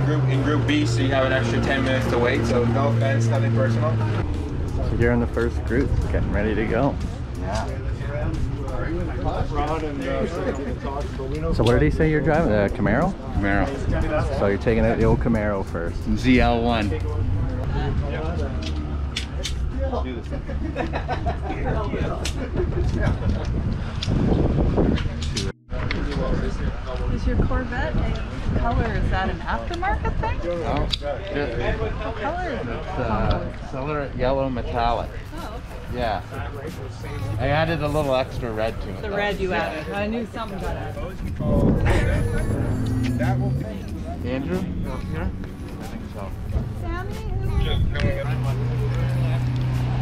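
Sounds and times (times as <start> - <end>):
people talking indistinctly: 0.0 - 23.9, 24.9 - 50.0
steady low rumble: 0.3 - 30.2, 34.8 - 50.0.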